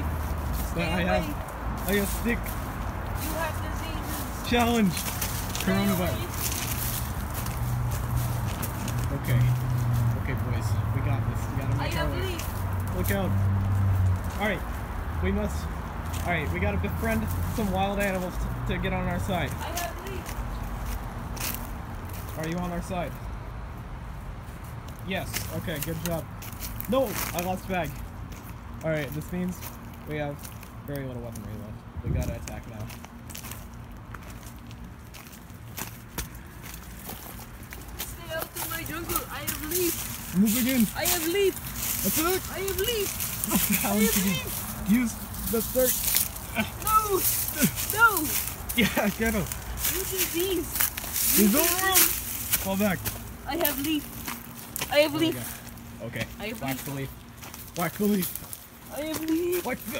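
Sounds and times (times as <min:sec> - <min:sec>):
footsteps through leaves: 0:00.0 - 0:22.8, 0:32.2 - 0:59.9.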